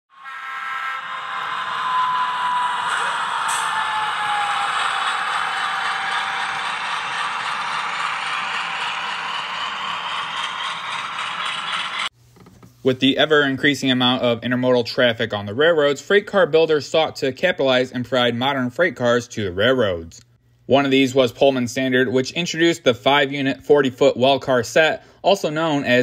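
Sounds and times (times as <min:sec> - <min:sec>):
train rolling: 0:03.4 - 0:12.1.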